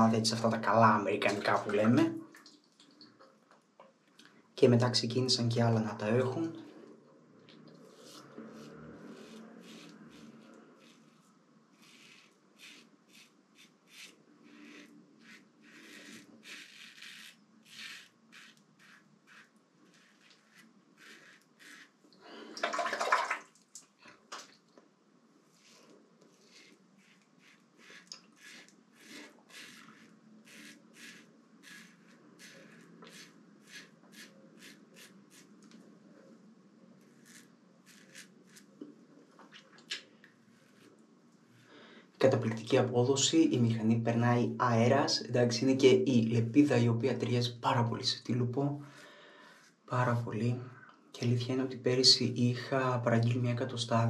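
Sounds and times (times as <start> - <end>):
razor scraping stubble: 7.8 - 22.0, 25.6 - 35.8, 37.0 - 38.9.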